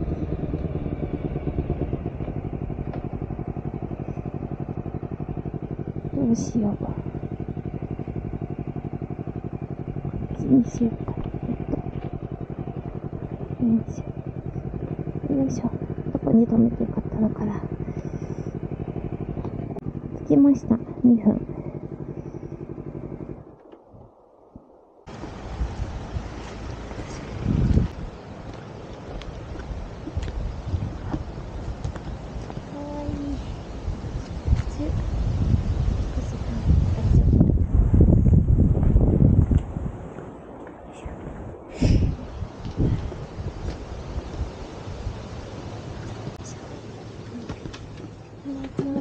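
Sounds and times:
motorcycle engine at low revs: 0.0s - 23.9s, 25.1s - 49.0s.

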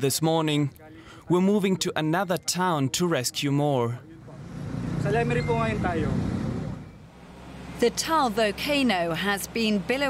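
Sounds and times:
road vehicle passing: 4.1s - 10.0s.

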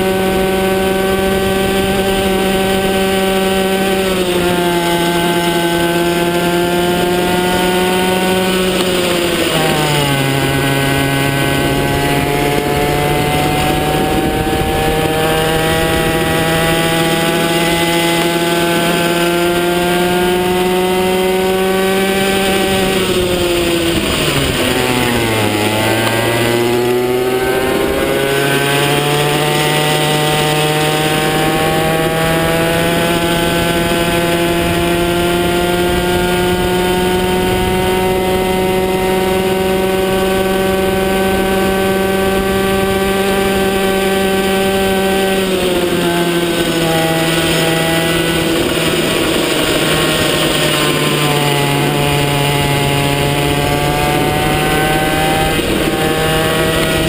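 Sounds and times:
kart engine at high revs: 0.0s - 57.0s.

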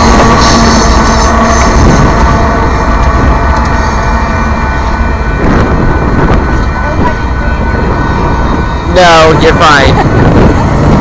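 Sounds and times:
train rumbling away: 0.0s - 11.0s.

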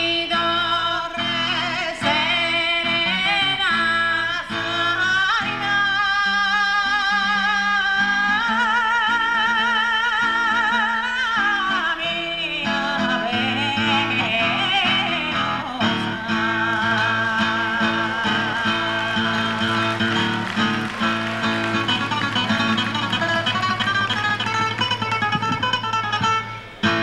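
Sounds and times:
acoustic guitar: 0.0s - 27.0s
women singing: 11.6s - 19.4s.

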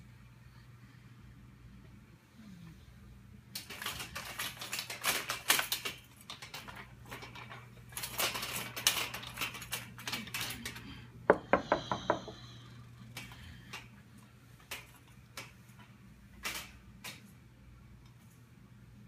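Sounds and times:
steady low hum: 0.0s - 5.0s, 5.6s - 19.0s.

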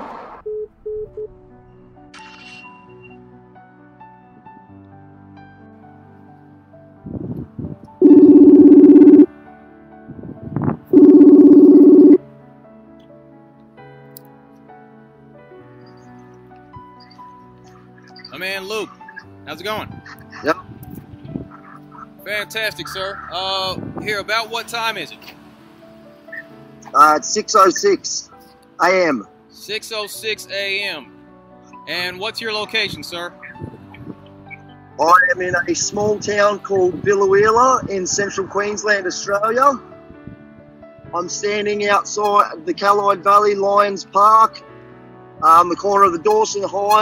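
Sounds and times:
call-ended beeps: 0.5s - 1.3s, 8.0s - 9.3s, 11.0s - 12.2s
faint background music: 0.5s - 47.0s.

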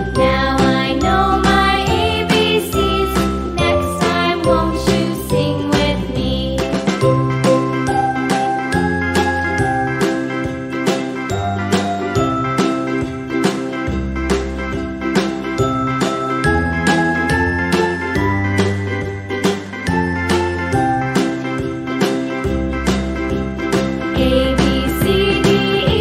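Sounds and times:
instrumental children's song: 0.0s - 26.0s.

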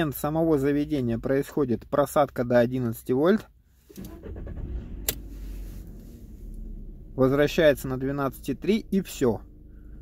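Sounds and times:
car engine idling: 3.8s - 10.0s.

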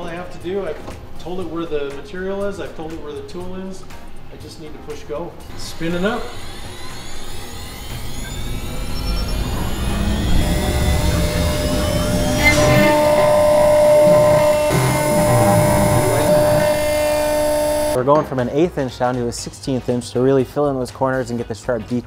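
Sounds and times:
router spindle whine: 5.4s - 18.0s
background music: 9.4s - 22.0s.

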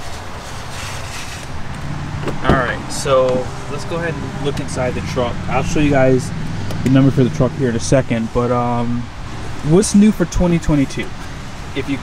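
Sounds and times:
low hum: 1.6s - 9.6s.

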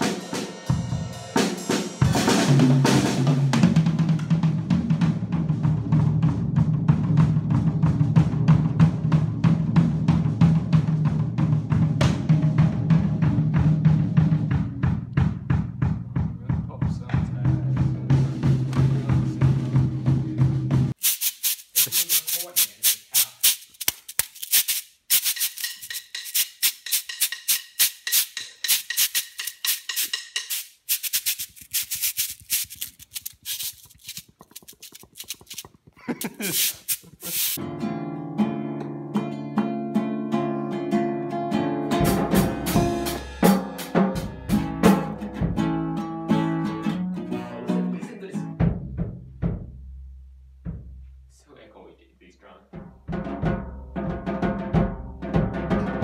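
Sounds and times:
drum kit rapid strikes: 0.0s - 37.6s, 41.9s - 45.9s, 52.8s - 56.0s
hiss: 21.0s - 23.9s, 24.5s - 37.6s
crisp asmr clicks: 21.6s - 37.6s.

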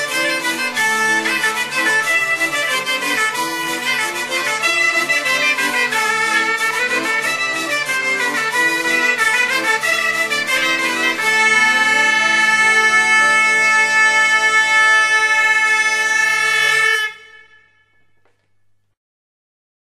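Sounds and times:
folk band music: 0.0s - 18.7s.

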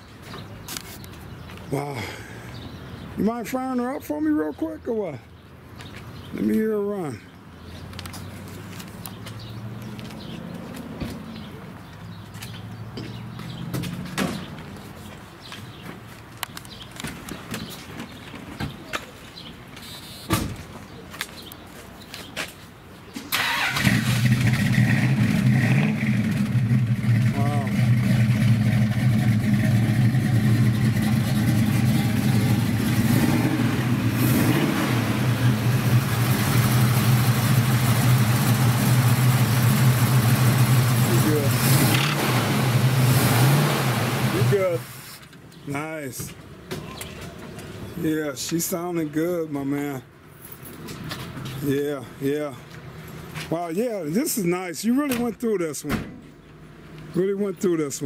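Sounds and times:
car engine idling: 23.4s - 44.9s.

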